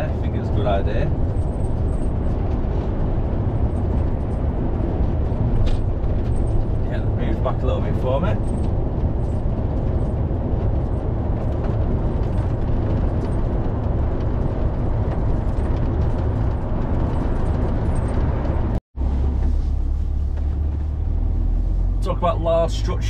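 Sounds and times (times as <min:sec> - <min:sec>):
lorry engine and road noise: 0:00.0 - 0:23.0.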